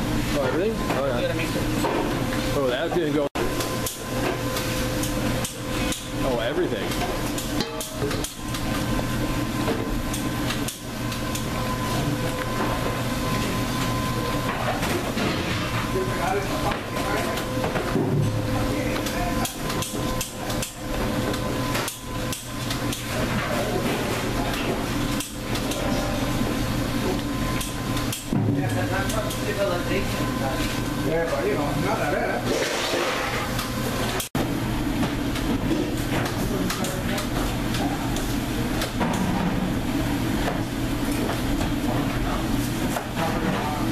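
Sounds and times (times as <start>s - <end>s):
kitchen machine hum: 0.0s - 43.9s.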